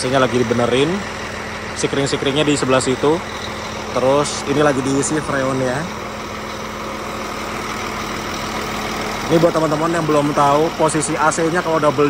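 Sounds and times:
diesel bus engine idling: 0.0 - 12.0.

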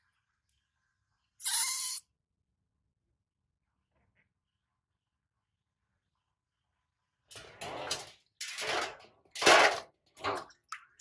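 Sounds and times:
baby monkey shrieking: 1.4 - 2.0.

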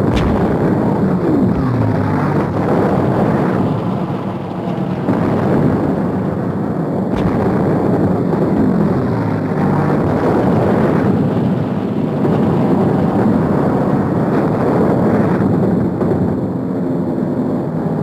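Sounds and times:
explosions: 0.0 - 11.6
sharp crack: 0.0 - 12.5
anti-aircraft gunfire: 0.0 - 16.1
propeller plane engines droning: 0.0 - 18.0.

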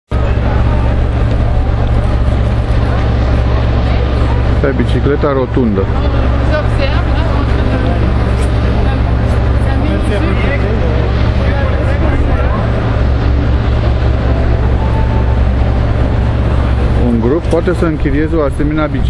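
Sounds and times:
faint indistinct voices: 0.1 - 19.0
low rumble of traffic: 0.1 - 19.0.

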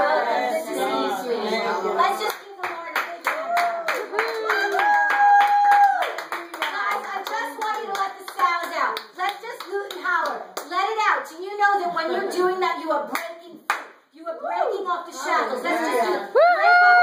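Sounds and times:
hands clapping a rhythm: 2.1 - 10.8, 13.1 - 14.0.

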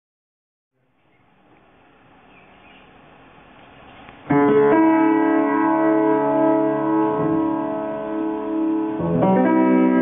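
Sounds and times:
piano music: 4.2 - 10.0.

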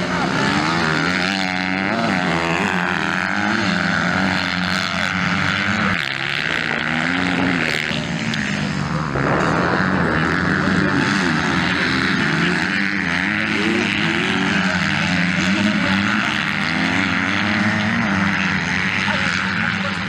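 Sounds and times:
high buzz of distant motorbikes: 0.0 - 20.0
motorbike engines revving: 0.0 - 20.0.

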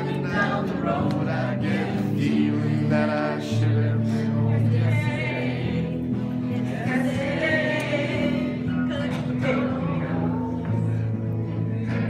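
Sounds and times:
musical accompaniment: 0.0 - 12.0
person singing live: 0.0 - 12.0.

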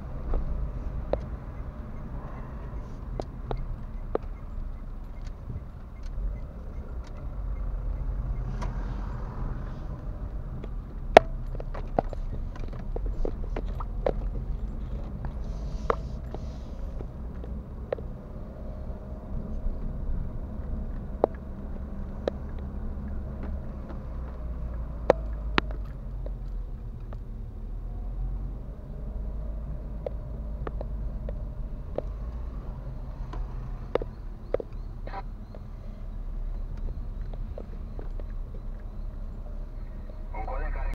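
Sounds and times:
car engine and road noise: 0.0 - 40.9
sharp clicks and knocks: 3.1 - 7.7, 20.6 - 27.3.

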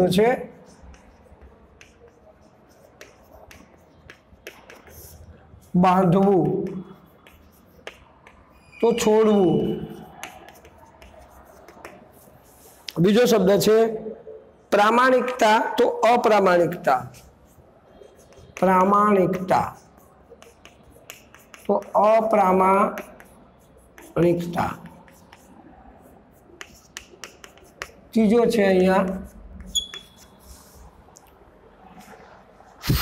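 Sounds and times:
chalk tapping and scratching: 0.0 - 13.4, 15.0 - 32.2, 32.8 - 33.0.

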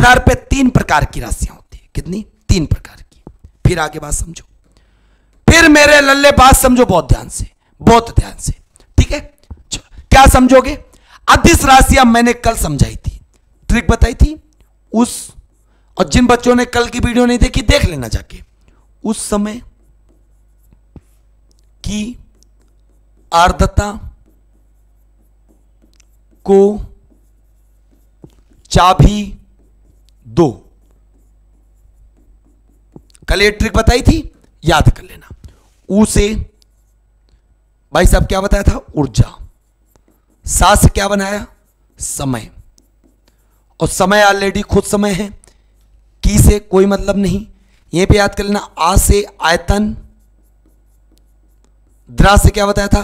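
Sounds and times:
low steady hum: 0.0 - 53.0
pen tapping and scratching on screen: 1.4 - 7.4, 8.1 - 10.4, 11.5 - 53.0.

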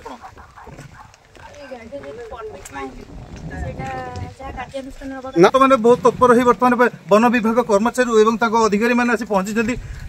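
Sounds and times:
faint voices: 0.0 - 6.7.

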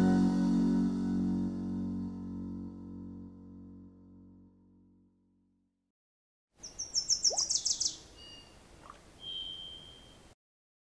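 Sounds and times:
bird chirping and whistling: 6.6 - 8.6, 9.2 - 10.2.

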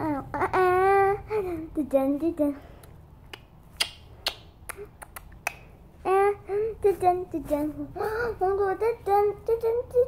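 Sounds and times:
beatboxing mouth clicks and pops: 2.8 - 5.8.

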